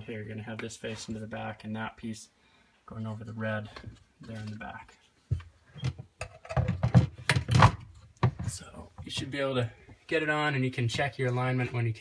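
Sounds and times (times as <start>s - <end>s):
hard plastic knocking and clattering: 5.3s - 9.3s.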